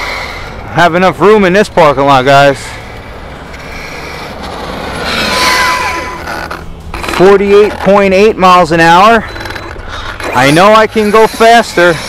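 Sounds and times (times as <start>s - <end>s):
rc truck passing with motor whine: 0.0s - 12.0s.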